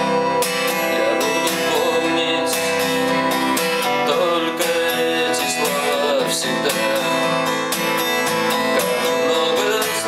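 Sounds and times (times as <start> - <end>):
acoustic guitar strumming: 0.0 - 10.0
man singing: 0.5 - 7.6, 8.4 - 10.0.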